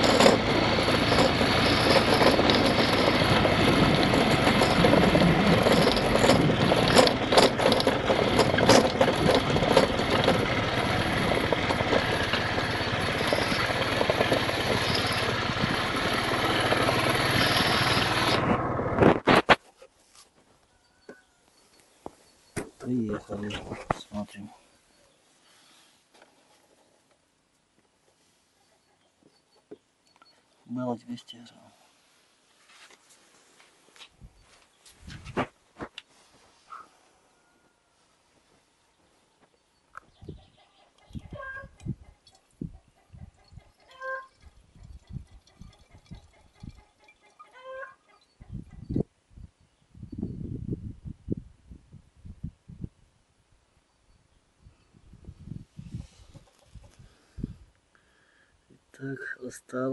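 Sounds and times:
handheld camera bumps and rustles: 0.0 - 21.2, 21.8 - 24.3, 32.6 - 36.6
chicken clucking: 40.3 - 49.0, 55.8 - 57.0.

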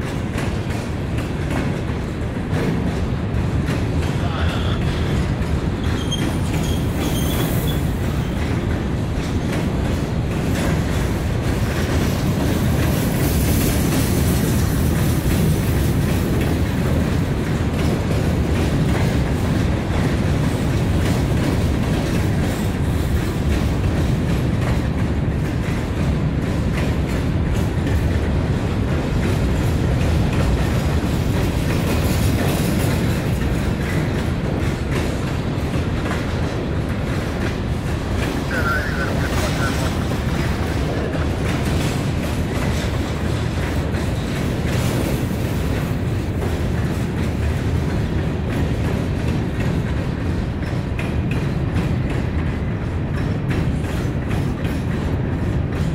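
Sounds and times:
freight train wheels rumbling: 0.0 - 55.9.

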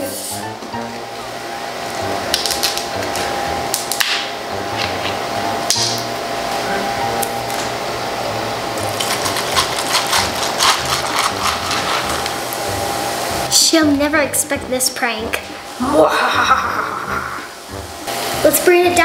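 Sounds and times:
cola pouring over ice: 8.8 - 12.4.

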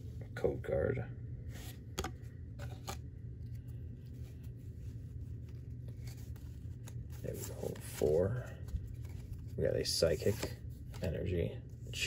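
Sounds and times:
trading cards flicking and rustling: 1.5 - 12.0.

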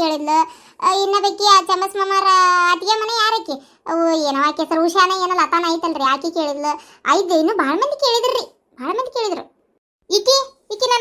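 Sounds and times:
high-pitched cartoon voice: 10.1 - 11.0.

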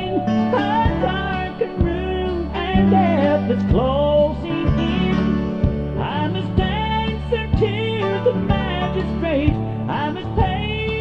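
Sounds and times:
gospel quartet music: 0.0 - 11.0.

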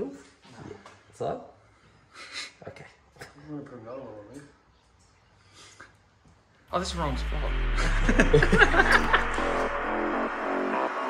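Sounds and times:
man speaking: 6.7 - 9.0.

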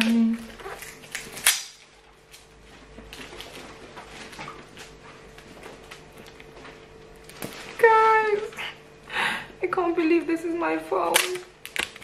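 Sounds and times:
plastic wrap snapping: 0.0 - 8.6, 11.1 - 12.0
plastic wrap crinkling: 0.0 - 8.8, 11.0 - 12.0.

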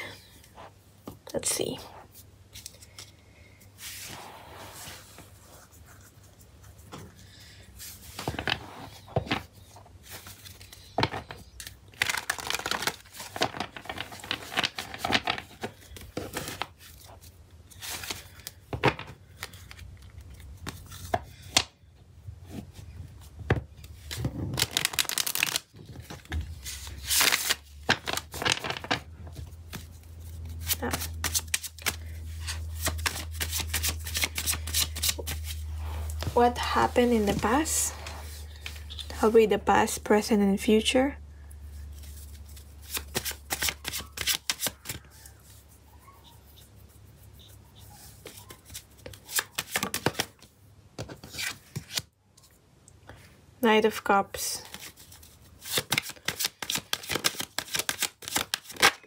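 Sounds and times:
cards riffling and slapping: 9.2 - 21.7, 23.7 - 36.3, 41.7 - 45.4, 48.0 - 52.1, 54.7 - 59.0
low steady hum: 25.7 - 44.2.

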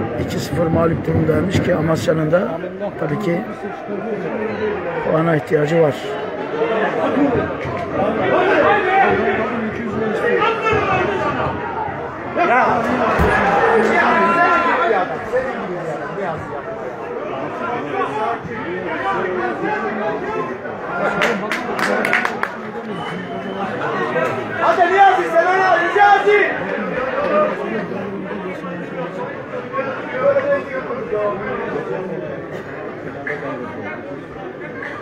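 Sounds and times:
men talking at once: 0.0 - 11.5
spectators chattering: 0.0 - 35.0.

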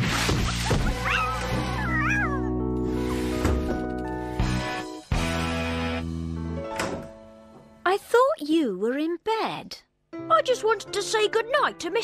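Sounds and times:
background music chords: 0.0 - 7.8
cat meowing yowl: 0.9 - 2.5.

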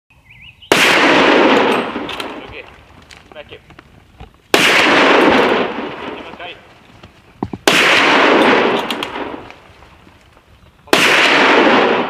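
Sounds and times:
loud rifle shot: 0.7 - 2.6, 4.5 - 6.4, 7.6 - 9.6, 10.9 - 12.0.

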